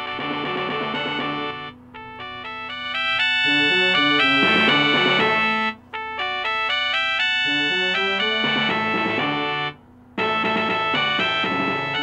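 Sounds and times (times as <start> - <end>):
organ-like keyboard music: 0.0 - 12.0.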